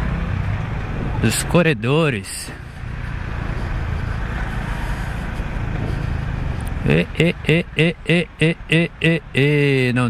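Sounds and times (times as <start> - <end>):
motorcycle engine at low speed: 0.0 - 7.8
road and traffic rumble: 0.0 - 10.0.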